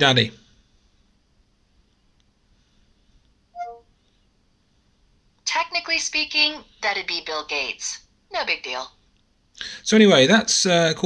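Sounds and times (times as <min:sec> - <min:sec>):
two-note falling phone chime: 0:03.6 - 0:03.8.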